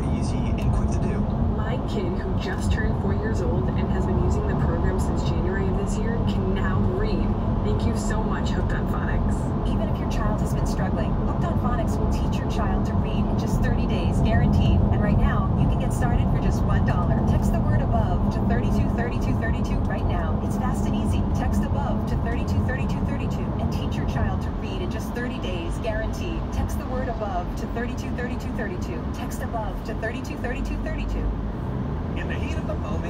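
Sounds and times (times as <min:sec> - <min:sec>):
faint radio voice: 0:00.0 - 0:01.2
car road and engine noise: 0:00.0 - 0:33.0.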